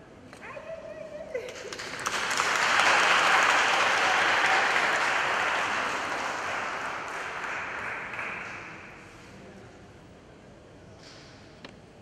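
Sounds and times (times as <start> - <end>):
congregation applauding: 1.5 - 9.2.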